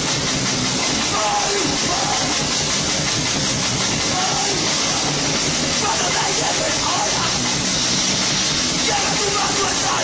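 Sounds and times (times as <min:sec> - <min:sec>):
distorted electric guitar: 0:00.0 - 0:10.0
drums: 0:00.0 - 0:10.0.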